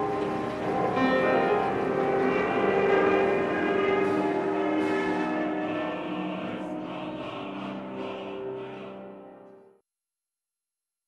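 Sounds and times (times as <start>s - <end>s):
theme music chords: 0.0s - 9.7s.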